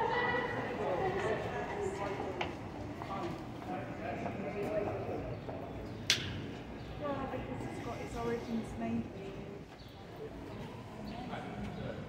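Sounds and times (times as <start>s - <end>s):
murmur of street noise: 0.0s - 12.0s.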